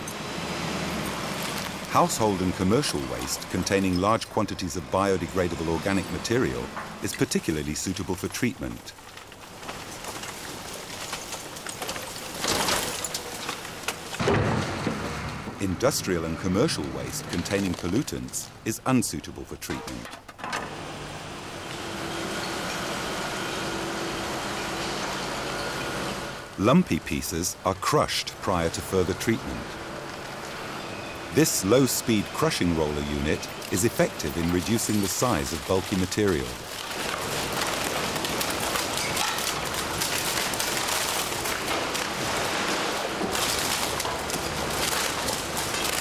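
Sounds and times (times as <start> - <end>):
machinery running steadily: 0.0 - 8.3, 27.3 - 46.0
roller shredder crushing waste: 0.0 - 18.7, 19.5 - 46.0.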